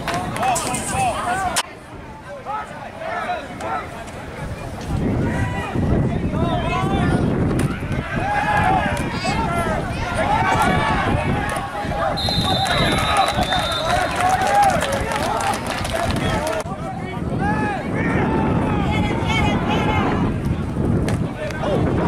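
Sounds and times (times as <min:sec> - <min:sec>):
crowd shouting and yelling: 0:00.0 - 0:22.0
shrill whistle: 0:12.2 - 0:14.1.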